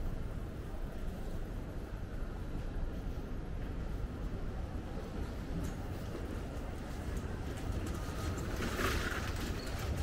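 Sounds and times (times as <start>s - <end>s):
low street rumble: 0.0s - 10.0s.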